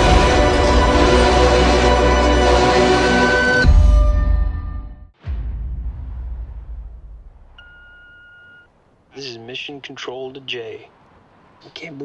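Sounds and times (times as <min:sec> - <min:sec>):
deep boom: 0:03.6 - 0:08.0
answering machine beep: 0:07.6 - 0:08.7.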